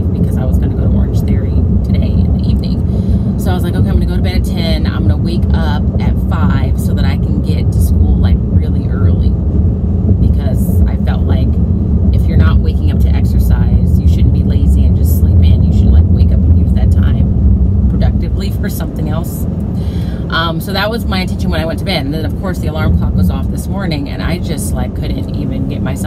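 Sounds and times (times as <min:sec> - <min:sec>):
woman talking: 0:00.0 - 0:09.4, 0:10.2 - 0:17.3, 0:17.9 - 0:26.0
car cabin road and engine rumble: 0:00.0 - 0:26.0.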